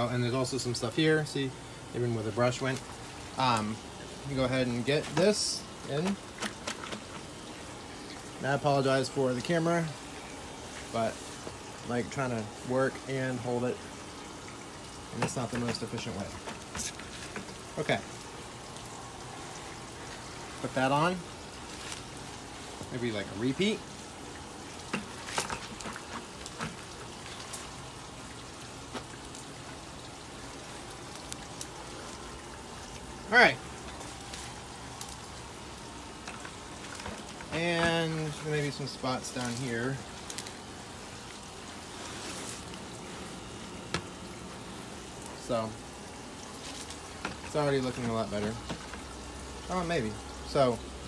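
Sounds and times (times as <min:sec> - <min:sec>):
running water hissing: 0:00.0 - 0:51.0
brush scrubbing a wall: 0:41.8 - 0:43.2.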